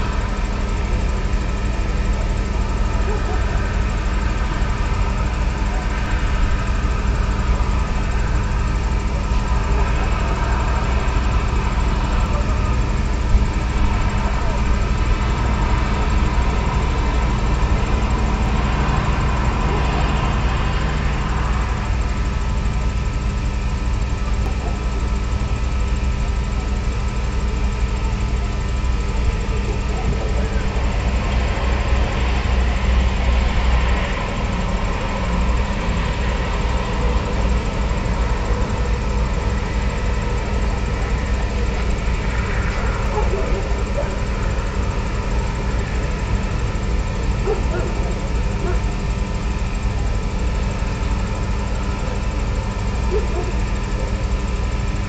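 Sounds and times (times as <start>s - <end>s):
ambient drone music: 29.0s - 54.3s.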